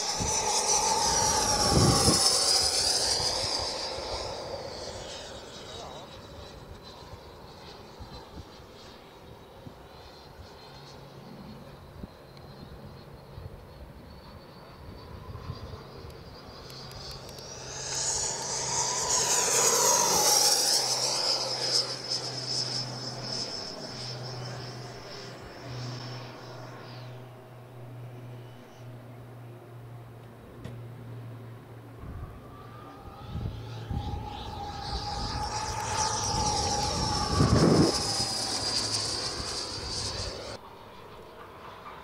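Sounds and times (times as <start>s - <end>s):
model jet fan whining: 0.0s - 42.0s.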